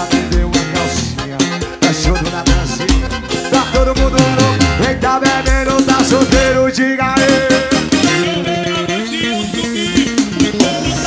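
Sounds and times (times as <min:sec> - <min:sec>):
drum kit beat: 0:00.0 - 0:11.0
melodic instruments: 0:00.0 - 0:11.0.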